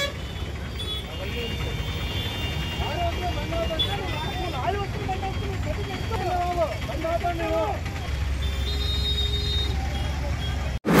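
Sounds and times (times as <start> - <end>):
idling bus and car engines: 0.0 - 11.0.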